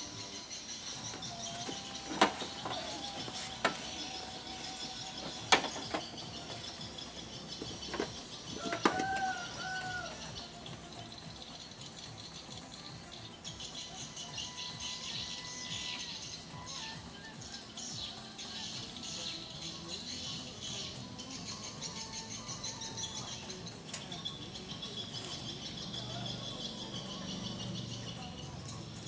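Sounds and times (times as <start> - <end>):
clicks and knocks of hands working: 5.1 - 6.6.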